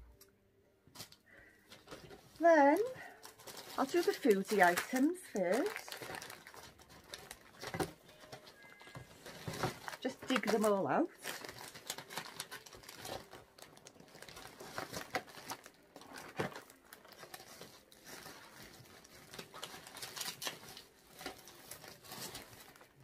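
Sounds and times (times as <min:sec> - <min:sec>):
shopping bags crinkling: 0:01.0 - 0:23.0.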